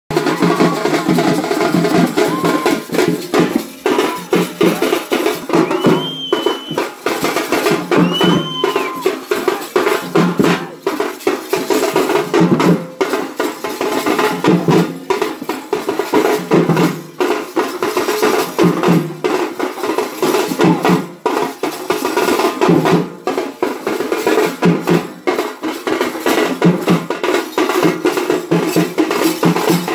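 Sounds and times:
large drums beaten fast: 0.1 - 29.9.

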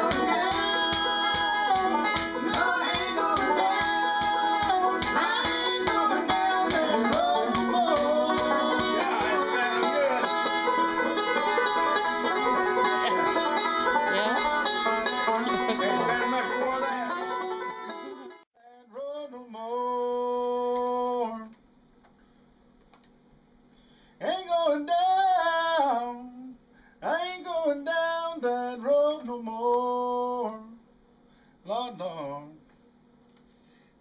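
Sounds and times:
bluegrass banjo picking: 0.0 - 18.4.

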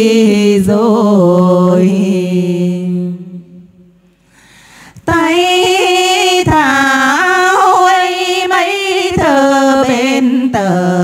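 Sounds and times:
two women singing: 0.0 - 3.4, 5.0 - 11.0.

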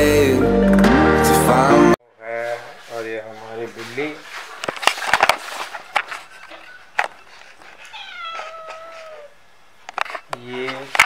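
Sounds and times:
cat meowing: 7.8 - 9.4.

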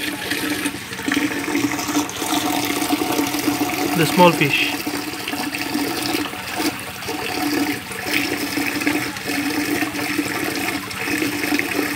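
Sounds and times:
water pouring and splashing: 0.0 - 11.9.

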